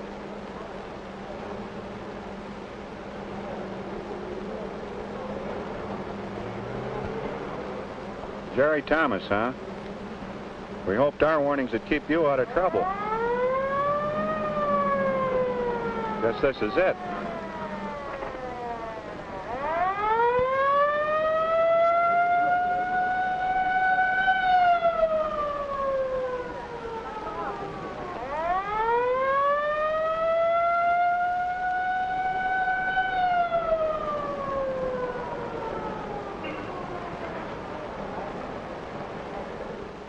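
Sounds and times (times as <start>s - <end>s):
wailing siren: 11.0s - 40.0s.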